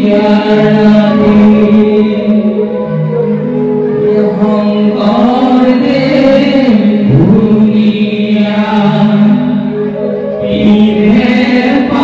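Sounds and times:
voices chanting together: 10.4 - 12.0.

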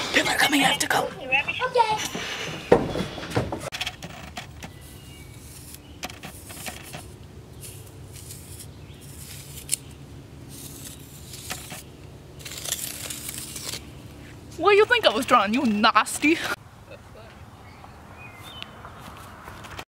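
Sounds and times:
stick scraping dry dirt: 3.7 - 16.6.

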